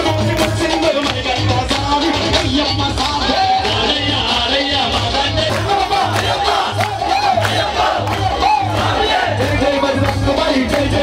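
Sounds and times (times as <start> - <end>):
crowd shouting and chanting: 0.0 - 11.0
devotional music with heavy bass: 0.0 - 11.0.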